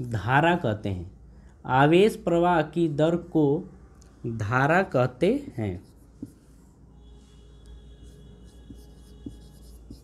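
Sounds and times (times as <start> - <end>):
marker pen on whiteboard: 5.2 - 10.0.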